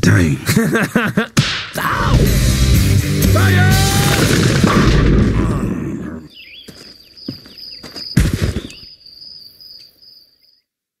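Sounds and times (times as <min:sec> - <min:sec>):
loud blast: 0:03.3 - 0:05.7
crickets chirring: 0:06.3 - 0:10.6.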